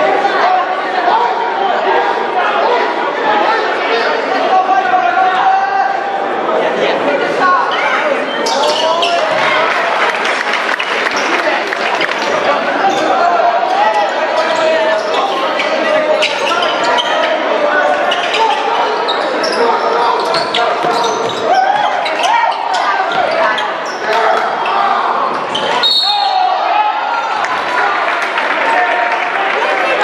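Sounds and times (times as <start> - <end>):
echoing voices: 0.0 - 30.0
short high whistle: 25.8 - 26.4.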